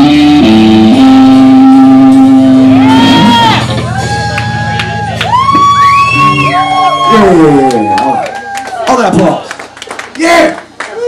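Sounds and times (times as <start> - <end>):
live band music: 0.0 - 9.4.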